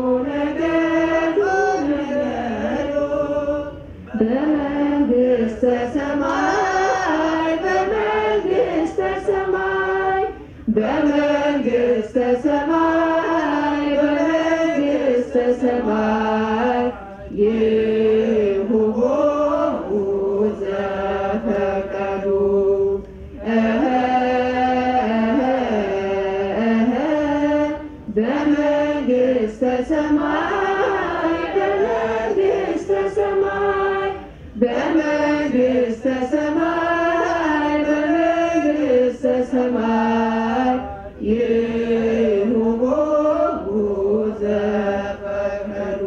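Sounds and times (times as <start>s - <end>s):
voices chanting a hymn: 0.0s - 46.0s.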